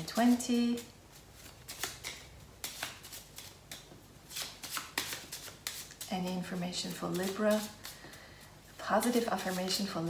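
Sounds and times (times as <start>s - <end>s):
cards being shuffled: 0.1s - 8.1s.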